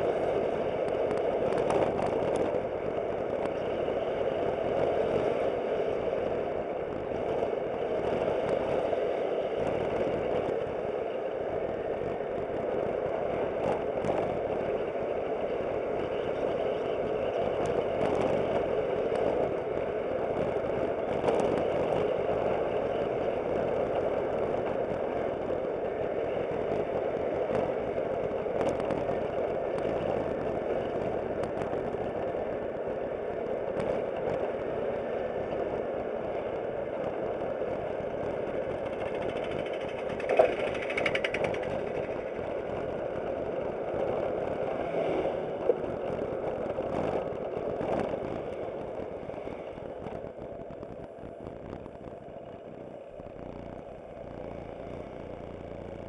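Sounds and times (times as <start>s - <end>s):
wind noise: 0.0s - 56.0s
scooter engine: 38.8s - 43.9s, 53.0s - 56.0s.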